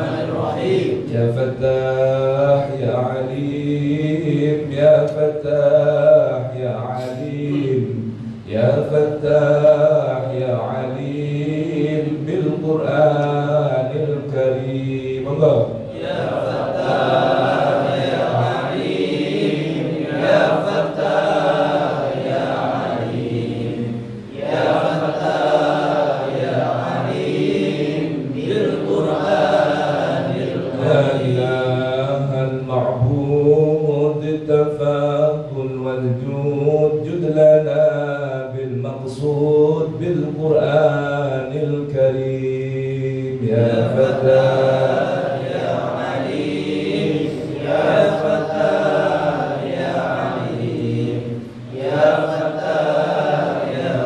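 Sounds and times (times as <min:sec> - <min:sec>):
men chanting a prayer: 0:00.0 - 0:54.0.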